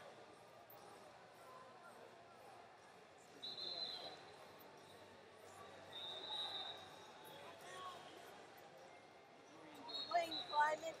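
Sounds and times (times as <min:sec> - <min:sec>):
faint arena hubbub: 0:00.0 - 0:11.0.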